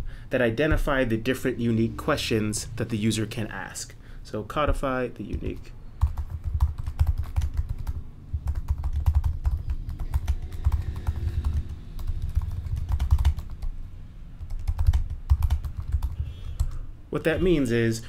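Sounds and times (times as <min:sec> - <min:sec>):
typing on keyboard: 0:05.3 - 0:13.7, 0:14.4 - 0:16.8.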